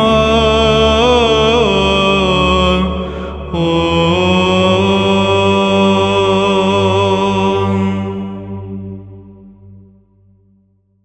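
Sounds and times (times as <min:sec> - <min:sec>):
low vocal drone: 0:00.0 - 0:10.0.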